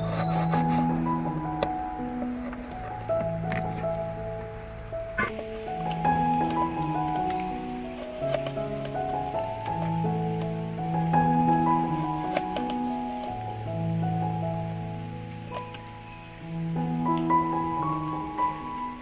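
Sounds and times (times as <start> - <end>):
forest insects droning: 0.0 - 19.0
slow background music: 0.0 - 19.0.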